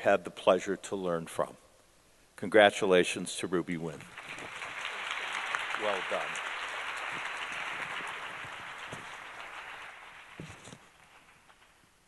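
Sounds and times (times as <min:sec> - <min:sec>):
audience applauding: 0:04.0 - 0:11.8.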